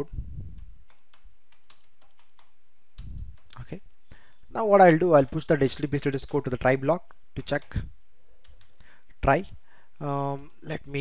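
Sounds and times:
computer keyboard typing: 0.8 - 3.6, 8.4 - 8.8.

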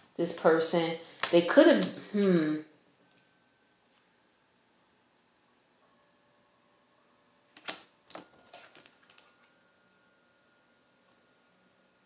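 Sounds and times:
cards being shuffled: 7.5 - 9.5.

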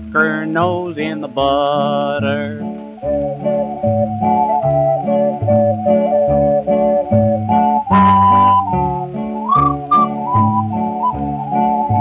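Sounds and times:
dance band instrumental: 3.6 - 11.8.

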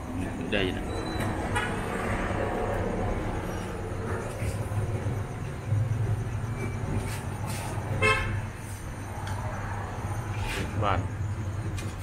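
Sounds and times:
steady low hum: 0.0 - 12.0
street noise: 0.0 - 12.0
vehicle horn toot: 8.0 - 8.5.

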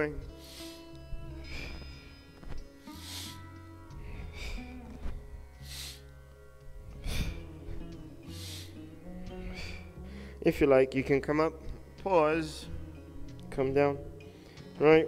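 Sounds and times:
peaceful background music: 0.0 - 15.0
man breathing sharply: 0.3 - 5.0, 5.6 - 6.2, 7.0 - 10.4.

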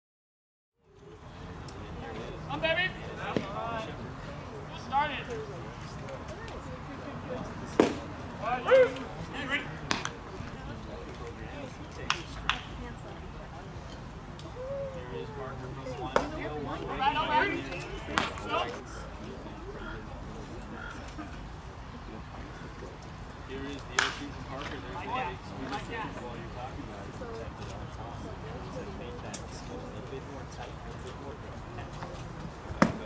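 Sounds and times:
people talking: 1.0 - 33.0
baseball smacking into mitt: 7.8 - 8.0, 9.9 - 10.2, 16.1 - 16.3, 18.1 - 18.4, 32.8 - 33.0
baseball popping into mitt: 32.8 - 33.0.

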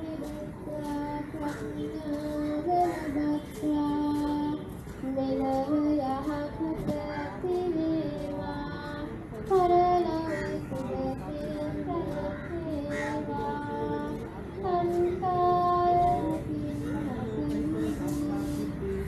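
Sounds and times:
high voice singing devotional melody: 0.0 - 19.0.

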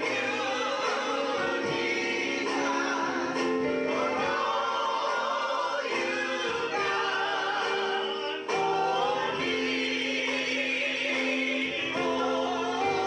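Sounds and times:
gospel choir singing: 0.0 - 13.0.

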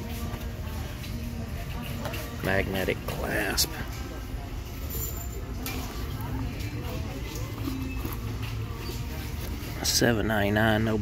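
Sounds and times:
distant voices talking: 0.0 - 11.0.

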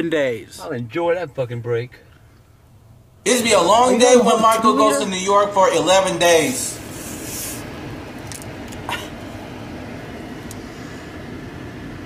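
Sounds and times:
car cabin hum: 0.1 - 12.0.

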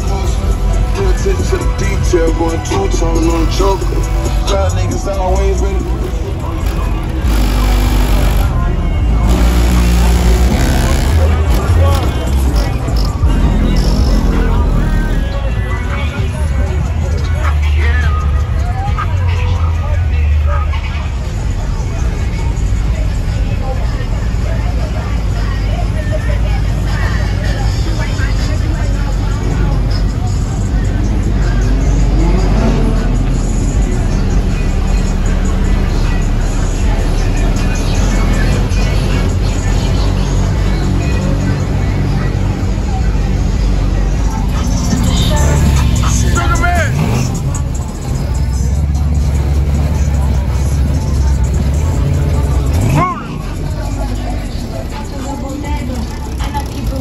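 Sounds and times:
bass-heavy music: 0.0 - 57.0
car engines running: 0.0 - 57.0
crowd chatter: 0.0 - 57.0
people talking: 0.0 - 57.0.

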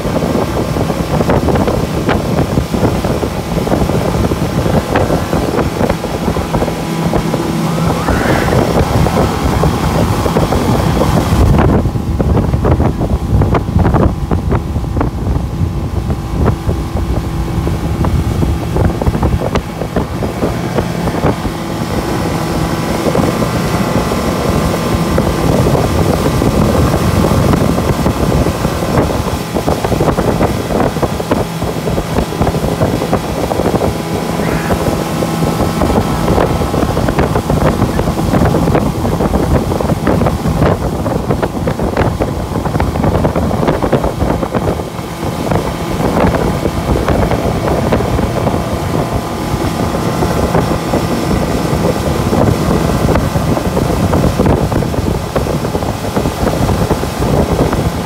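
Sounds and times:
motorboat engine running: 0.0 - 58.0
wind buffeting microphone: 0.0 - 58.0.

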